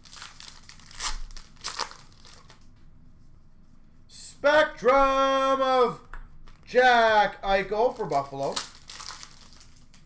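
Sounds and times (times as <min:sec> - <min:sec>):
wrapper crinkling and tearing: 0:00.0 - 0:02.7, 0:07.8 - 0:10.0
person speaking: 0:04.1 - 0:08.7.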